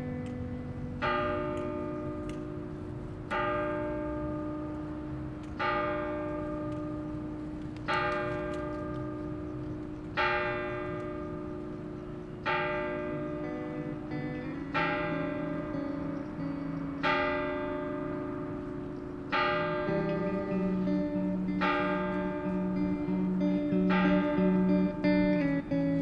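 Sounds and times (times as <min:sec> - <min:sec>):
bells chiming: 0:07.9 - 0:25.8.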